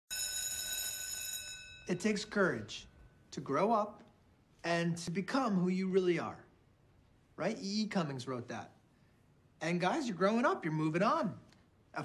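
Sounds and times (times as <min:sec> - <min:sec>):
electronic school bell tone: 0:00.1 - 0:02.0.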